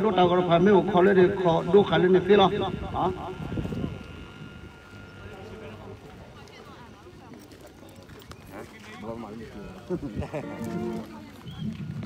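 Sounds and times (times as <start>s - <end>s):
people talking: 5.2s - 12.0s.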